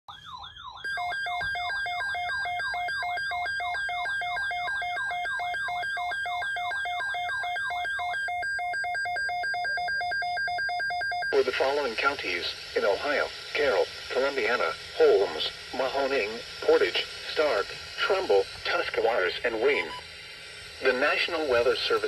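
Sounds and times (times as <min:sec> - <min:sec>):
two-tone electronic beeping: 0:00.1 - 0:22.0.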